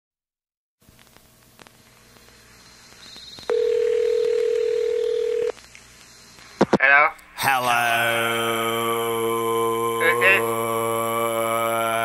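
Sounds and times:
faint line hiss: 0:00.8 - 0:07.4
steady telephone tone: 0:03.2 - 0:05.6.

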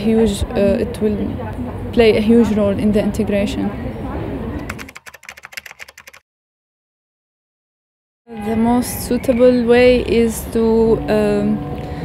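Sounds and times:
keyboard typing: 0:04.6 - 0:06.2.

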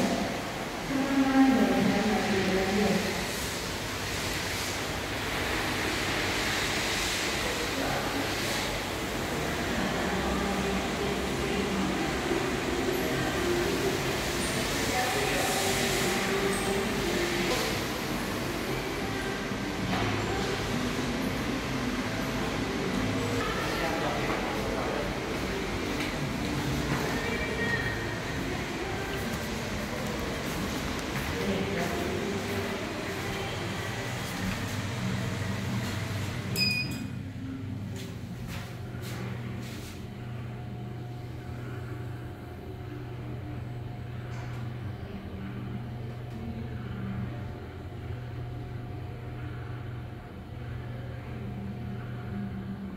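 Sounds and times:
air hum and rush: 0:00.0 - 0:52.9
faint indistinct voices: 0:05.4 - 0:52.9
short high beep: 0:36.5 - 0:37.1.

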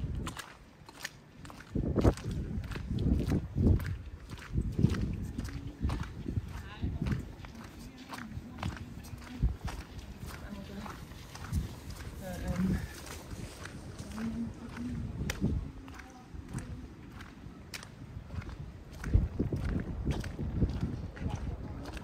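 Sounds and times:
footsteps on wet pavement: 0:00.0 - 0:22.0
passers-by talking: 0:05.0 - 0:22.0.

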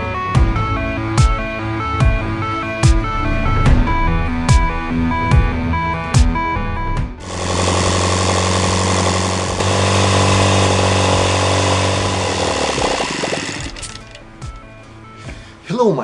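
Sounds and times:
model engine running: 0:07.2 - 0:14.2.

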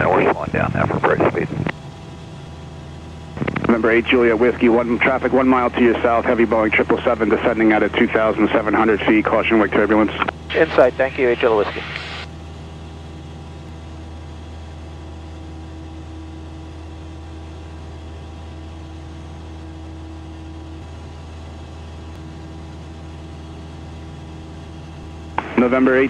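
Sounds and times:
higher steady hum: 0:00.0 - 0:26.0
propeller plane engine drone: 0:00.0 - 0:26.0.

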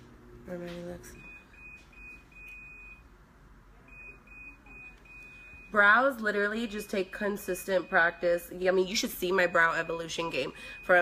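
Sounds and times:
faint high-pitched electronic beeping: 0:03.8 - 0:05.9.

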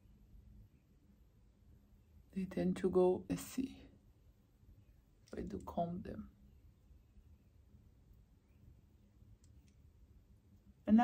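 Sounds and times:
woman speaking: 0:02.3 - 0:03.9, 0:05.3 - 0:06.4.

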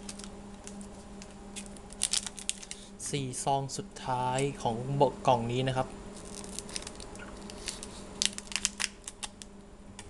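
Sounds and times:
wrapper crinkling and crackling: 0:00.0 - 0:02.8, 0:06.2 - 0:09.5.

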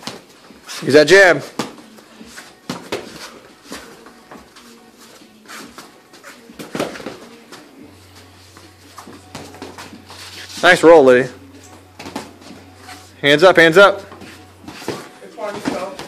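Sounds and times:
footwork on ring canvas: 0:00.0 - 0:16.0
boxing gloves thudding: 0:01.5 - 0:01.8, 0:02.6 - 0:03.2.

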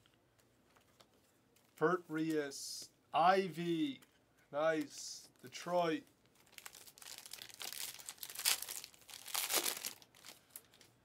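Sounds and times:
cards and plastic packaging crinkling: 0:04.7 - 0:11.0.

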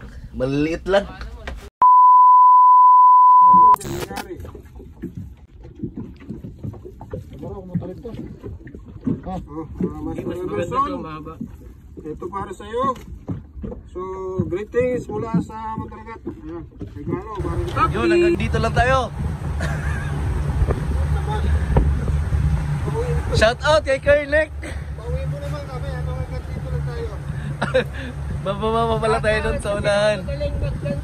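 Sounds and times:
wind: 0:00.0 - 0:02.0, 0:03.1 - 0:31.0
censor bleep: 0:01.8 - 0:04.1
boat engine noise: 0:03.1 - 0:31.0
people talking: 0:17.0 - 0:19.1, 0:22.8 - 0:31.0.

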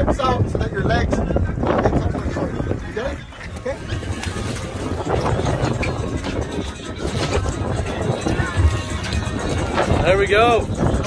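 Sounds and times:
wind buffeting microphone: 0:00.0 - 0:11.0
outboard motor idling: 0:02.2 - 0:11.0.

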